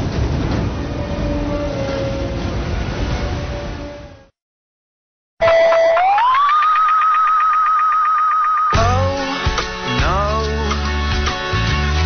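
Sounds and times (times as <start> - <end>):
warbling siren tone: 5.4 - 8.8.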